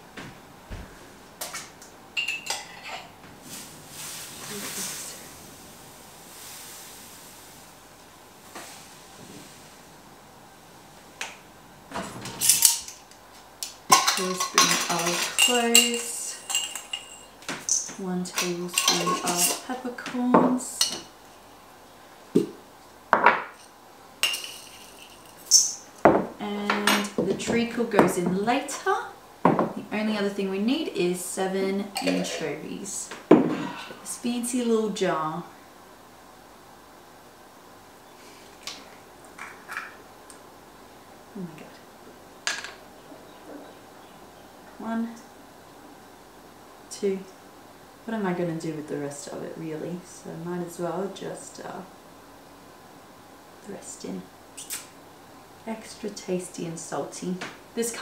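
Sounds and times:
spoon clinking against mug: 0:13.9 - 0:17.3
dry ingredients clattering in metal bowl: 0:13.9 - 0:19.7, 0:24.2 - 0:25.7.

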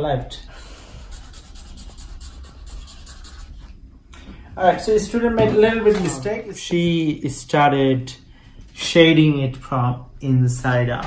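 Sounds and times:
marker rubbing on paper: 0:00.8 - 0:03.8.

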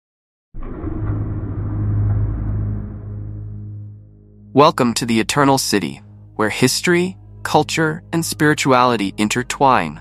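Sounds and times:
low rumbling drone: 0:00.6 - 0:10.0.

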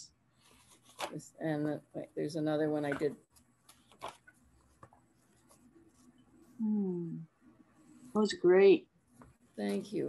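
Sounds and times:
paper rustling: 0:00.4 - 0:01.2, 0:02.9 - 0:06.1.

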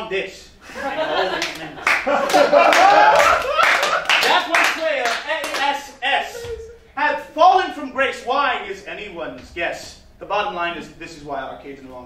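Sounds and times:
audience laughing: 0:00.7 - 0:04.7
audience clapping: 0:01.3 - 0:05.8.

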